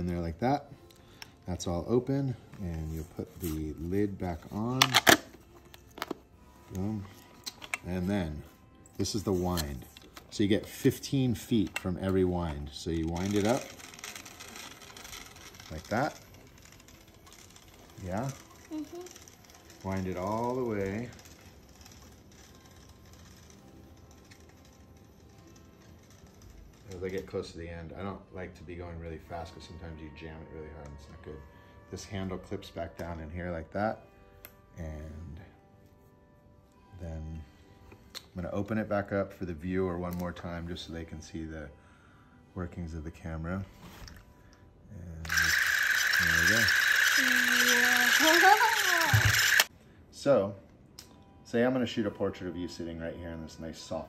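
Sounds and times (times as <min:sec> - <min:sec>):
camera spring motor being wound: 0:11.6 - 0:27.2, 0:45.2 - 0:49.7
fine ratcheting clicks: 0:45.3 - 0:49.7.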